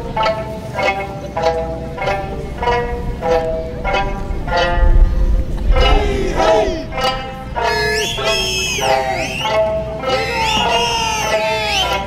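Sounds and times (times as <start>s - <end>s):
low rumble: 5.0s - 7.7s
sanshin phrases: 5.7s - 9.5s
voices shouting calls: 5.7s - 12.0s.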